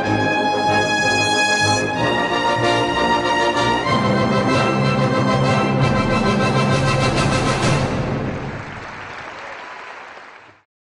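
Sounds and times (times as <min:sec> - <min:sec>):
audience applause: 0:08.3 - 0:10.7.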